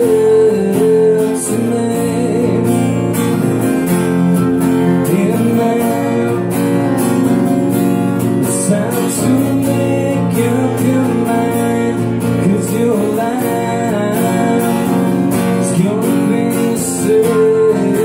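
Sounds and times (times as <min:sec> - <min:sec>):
electric guitar lead lines: 0:00.0 - 0:18.0
strummed acoustic guitar: 0:00.0 - 0:18.0.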